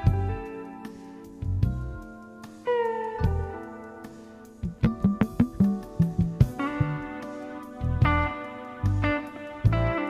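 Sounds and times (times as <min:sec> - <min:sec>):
held bending lead note: 0:04.6 - 0:07.2
jazz fusion band playing: 0:04.6 - 0:07.2.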